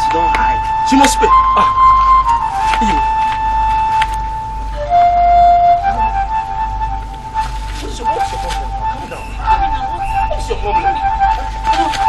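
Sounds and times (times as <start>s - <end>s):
flute-like film music note: 0.0s - 12.0s
people crying out: 0.8s - 5.1s.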